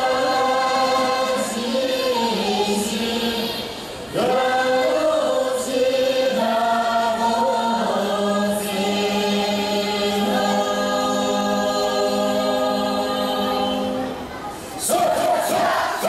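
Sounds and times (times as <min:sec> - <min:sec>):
choir singing held notes: 0:00.0 - 0:16.0.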